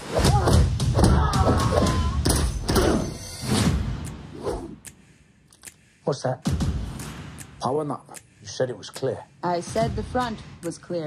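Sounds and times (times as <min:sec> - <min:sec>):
trailer music: 0:00.0 - 0:11.0.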